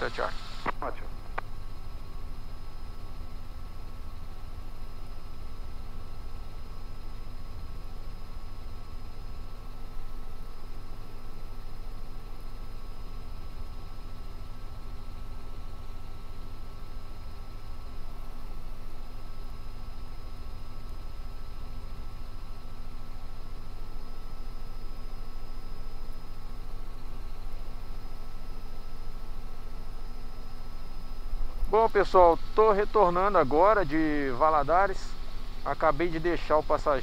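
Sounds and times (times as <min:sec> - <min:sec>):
steady whining tones: 0:00.0 - 0:06.4, 0:23.0 - 0:37.0
helicopter rotor rumble: 0:00.0 - 0:37.0.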